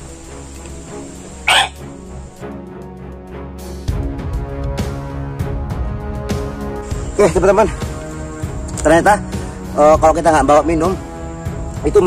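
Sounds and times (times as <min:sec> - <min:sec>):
background music with held tones: 0:00.0 - 0:12.0.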